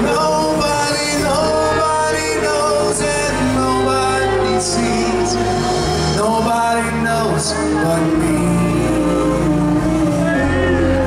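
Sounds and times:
grand piano: 0.0s - 11.0s
saxophone: 0.0s - 11.0s.

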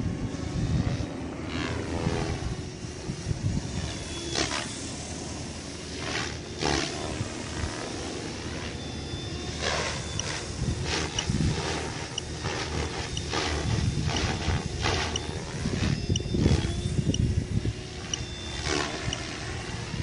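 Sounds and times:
helicopter rotor blades whooshing: 0.0s - 20.0s.

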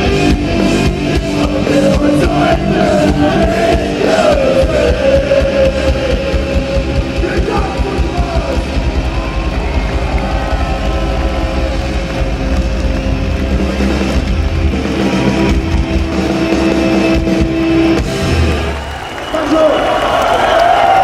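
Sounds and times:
bass guitar: 0.0s - 18.8s
distorted electric guitar: 0.0s - 18.8s
driving drums: 0.0s - 19.9s.

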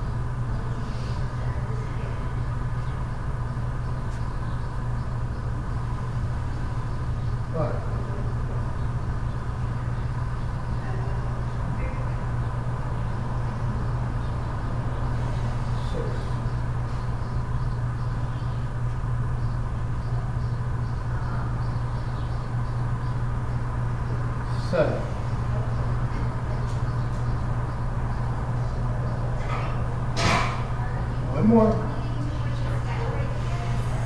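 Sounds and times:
faint steady whine: 0.0s - 34.0s
low machine hum: 0.0s - 34.0s.

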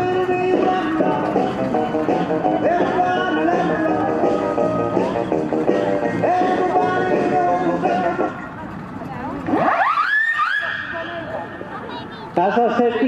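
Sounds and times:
bluegrass banjo and guitar music: 0.0s - 9.0s.

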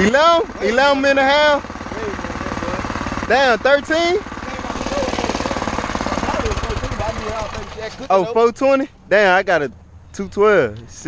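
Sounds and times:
small engine idling: 0.0s - 8.6s.

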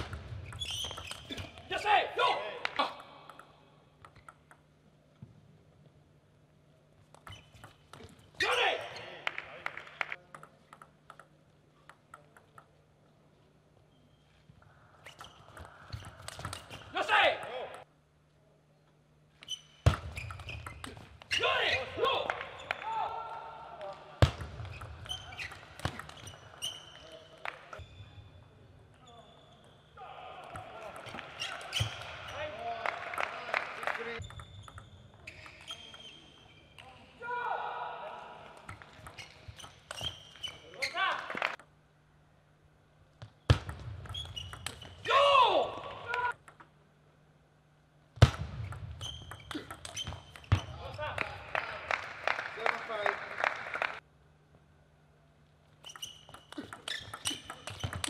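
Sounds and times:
table tennis ball clicks: 3.2s - 4.7s, 10.2s - 12.8s.

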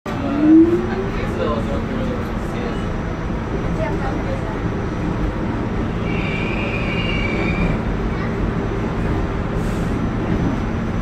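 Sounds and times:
underground train rumbling: 0.0s - 11.0s
voices: 0.1s - 9.0s.

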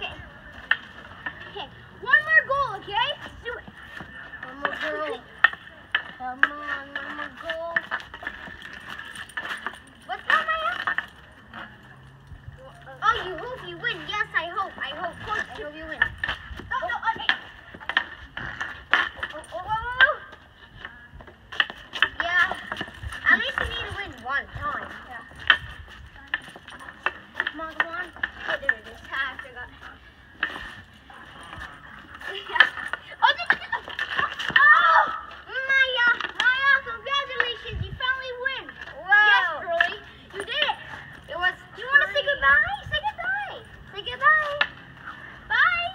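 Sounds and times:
hockey sticks clacking: 0.0s - 12.1s, 13.0s - 45.9s
children calling out: 32.3s - 39.7s.

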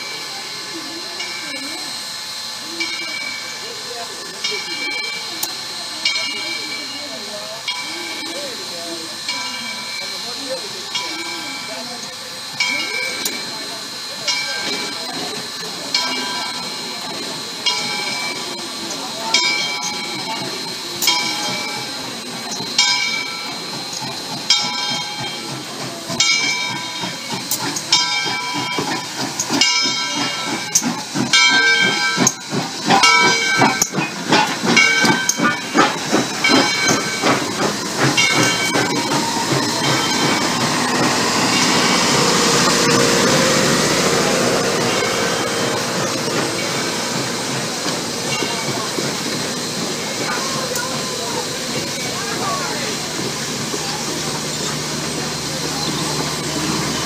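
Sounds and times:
hissing steam: 0.0s - 57.0s
steam locomotive bell ringing: 0.0s - 57.0s
locomotive running gear knocking: 12.6s - 57.0s.

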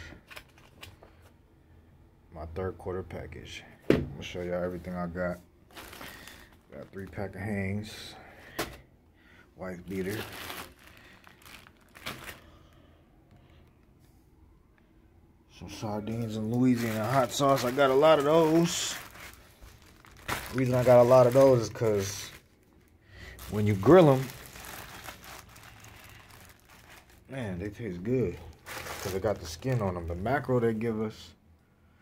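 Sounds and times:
low room noise: 0.0s - 32.0s
plastic bag crinkling: 5.7s - 7.2s, 9.7s - 13.8s, 15.8s - 30.5s.

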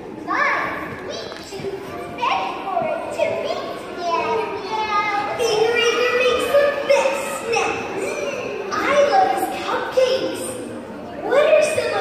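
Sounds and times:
childlike voices talking: 0.0s - 12.0s.

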